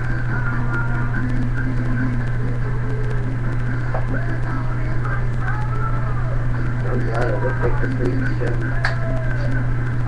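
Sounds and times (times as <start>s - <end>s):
faint music: 0.0s - 10.0s
low electrical hum: 0.0s - 10.0s.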